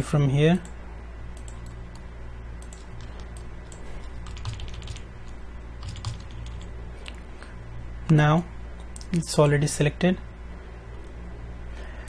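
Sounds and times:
low steady hum: 0.0s - 12.0s
keyboard keystrokes: 2.6s - 5.0s.

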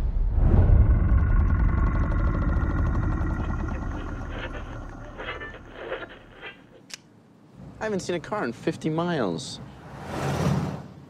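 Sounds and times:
deep rumbling hit: 0.0s - 6.4s.

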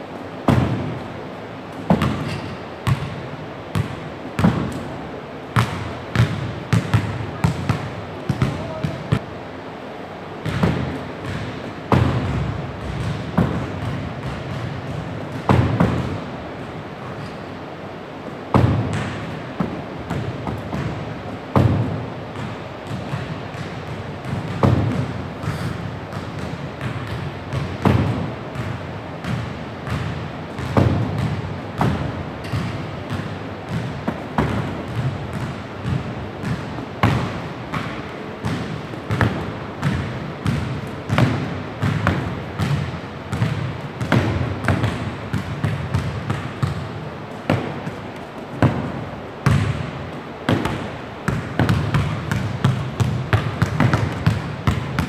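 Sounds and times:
balls bouncing on wooden floor: 5.6s - 9.3s, 10.4s - 16.2s, 18.5s - 49.8s, 50.5s - 55.0s.

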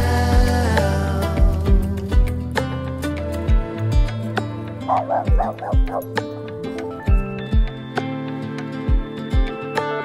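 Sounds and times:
music with kick-drum beat: 0.0s - 2.7s, 4.9s - 6.3s, 7.1s - 8.2s, 8.9s - 9.7s
small dog barking: 4.9s - 6.2s.

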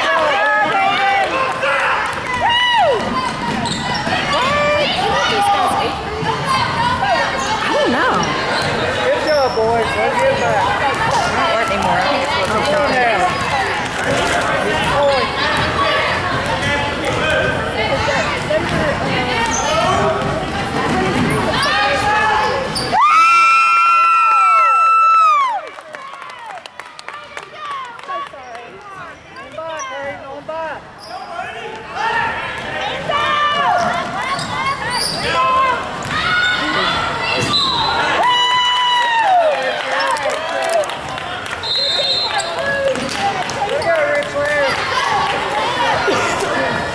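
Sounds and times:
crowd and player voices: 0.0s - 46.9s.

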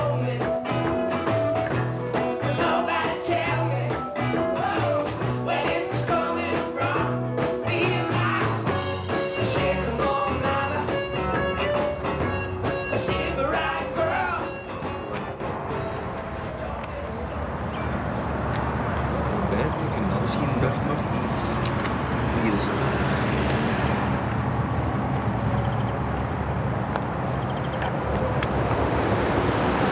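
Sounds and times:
person singing: 0.0s - 0.8s, 2.3s - 11.9s, 12.6s - 14.9s
guitar: 0.0s - 22.0s
steady drum beat: 4.2s - 15.8s.

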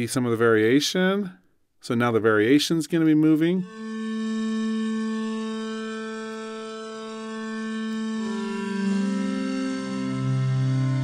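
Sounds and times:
sustained bowed synthesizer notes: 3.6s - 11.0s.

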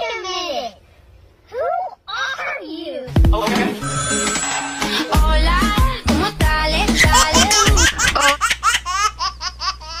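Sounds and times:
high-pitched laughter: 6.8s - 10.0s.

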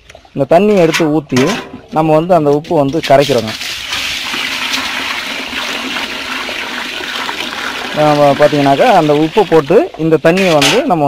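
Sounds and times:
water pouring from bucket into basin: 3.0s - 10.6s.

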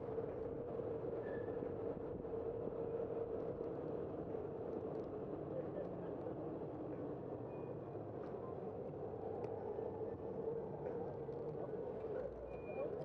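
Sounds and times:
faint squeaks and clicks: 1.2s - 1.7s, 11.2s - 13.0s.

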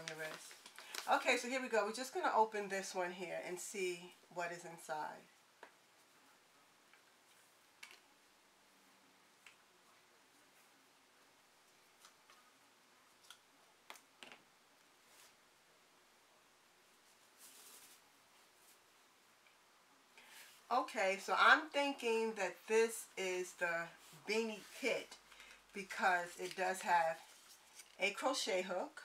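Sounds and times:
soft rustle of a bag: 15.0s - 15.6s, 16.8s - 19.1s, 23.8s - 28.0s.

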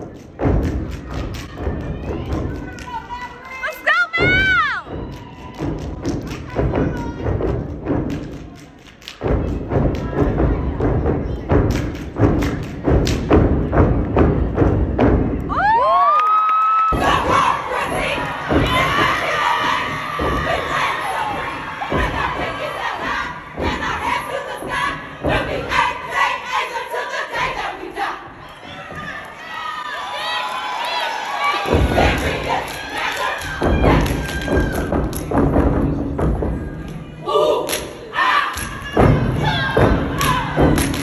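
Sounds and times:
rhythmic stomps and claps: 0.0s - 27.8s, 30.8s - 41.0s
crowd cheering and screaming: 15.5s - 22.4s, 28.6s - 35.1s.

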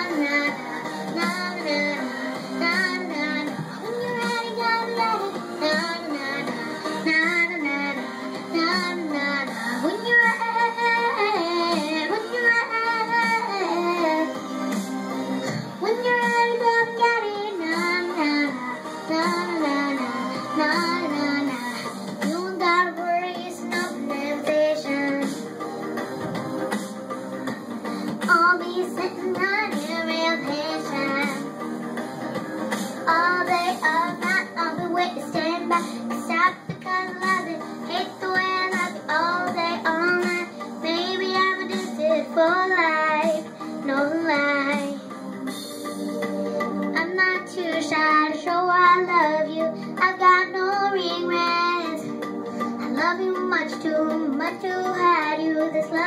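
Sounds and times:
girl singing: 0.0s - 14.4s, 15.5s - 25.4s, 28.0s - 31.5s, 33.0s - 45.1s, 46.9s - 52.2s, 52.8s - 56.0s
backing music: 0.0s - 56.0s.

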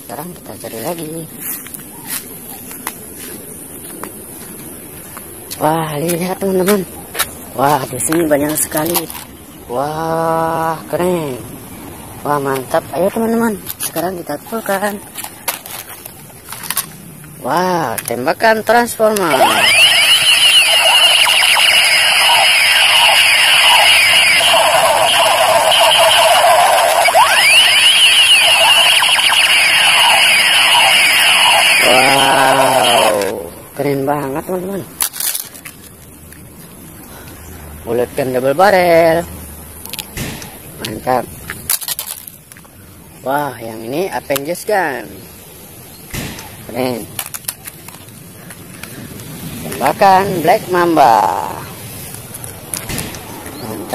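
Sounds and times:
toy gun laser sound effects: 19.2s - 33.4s
plastic toy guns clicking and clattering: 35.0s - 35.9s, 41.7s - 42.4s, 47.1s - 48.6s.

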